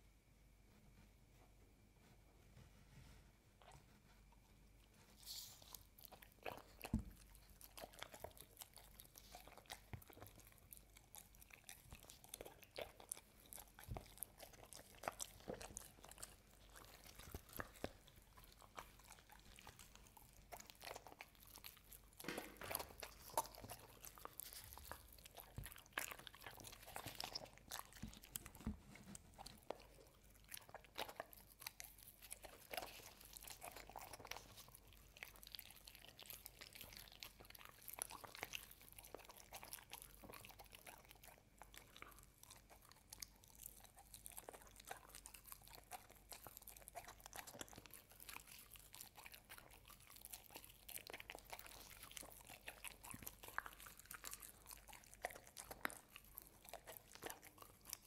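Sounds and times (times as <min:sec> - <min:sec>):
dog chewing crunchy treat: 0:04.8 - 0:58.0.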